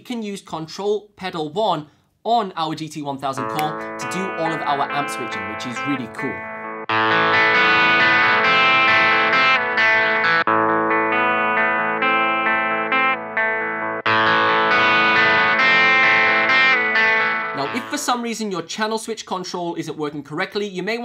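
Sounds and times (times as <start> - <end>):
distorted electric guitar: 3.4 - 18.1.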